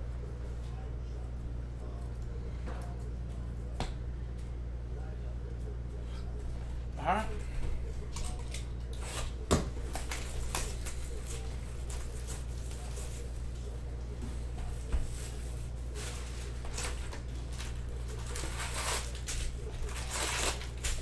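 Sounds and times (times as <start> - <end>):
steady low hum: 0.0 - 21.0
shrink wrap crinkling: 8.1 - 13.8, 15.1 - 21.0.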